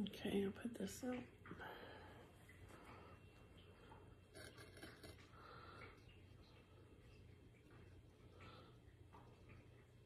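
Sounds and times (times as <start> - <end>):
faint breath: 1.6 - 3.4, 5.3 - 6.1.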